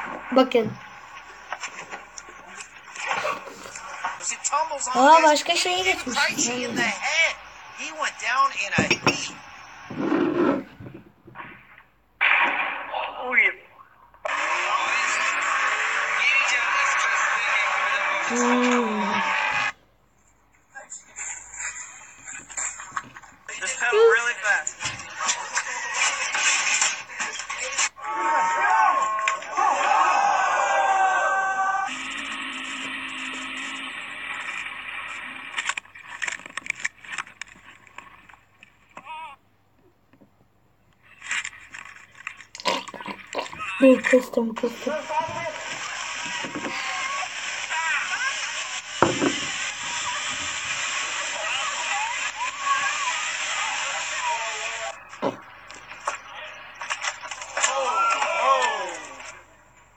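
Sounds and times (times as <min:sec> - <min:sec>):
knocks and scrapes: 0:08.8 - 0:11.6
person shouting: 0:23.9 - 0:24.2.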